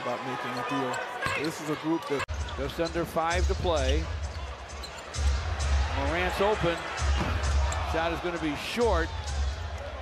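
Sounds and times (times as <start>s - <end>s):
low arena music: 2.3s - 10.0s.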